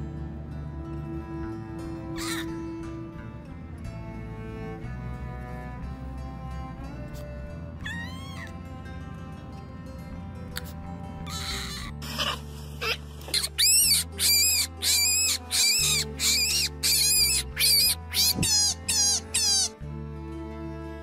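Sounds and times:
soft background music: 0.0 - 21.0
small animal squealing: 2.1 - 2.6, 7.8 - 8.5, 11.2 - 19.8.

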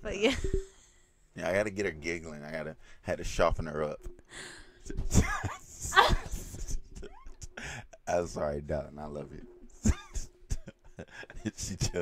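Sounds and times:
woman giggling: 5.0 - 7.6, 9.8 - 12.0.

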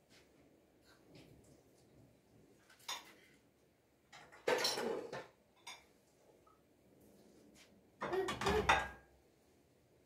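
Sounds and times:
pots clattering: 2.8 - 3.4, 4.1 - 6.0, 8.0 - 9.1
metal cookware clinking: 4.2 - 5.9, 8.0 - 9.0.

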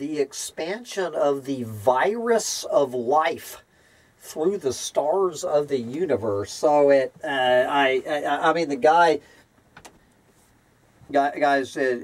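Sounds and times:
man's voice: 0.0 - 3.6, 4.2 - 9.2, 11.1 - 12.0.

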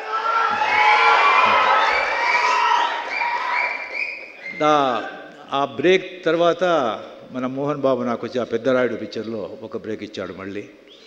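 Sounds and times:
audience cheering and shouting: 0.0 - 5.2.

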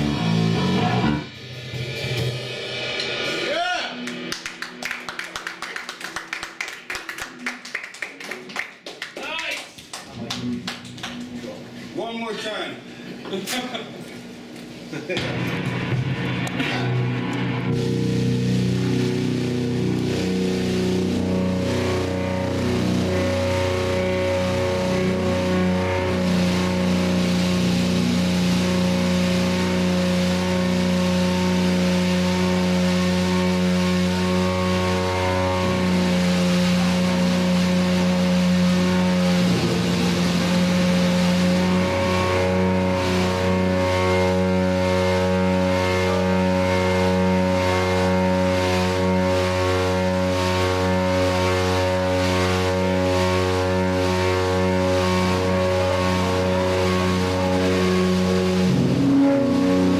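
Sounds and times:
drum kit with cymbals: 0.0 - 4.5
distorted electric bass drone: 0.0 - 4.6, 15.0 - 59.9.

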